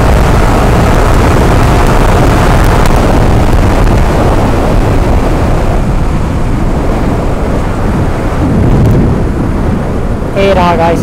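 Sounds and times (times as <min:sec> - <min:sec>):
motorcycle engine: 0:00.0 - 0:10.2
wind buffeting microphone: 0:00.0 - 0:11.0.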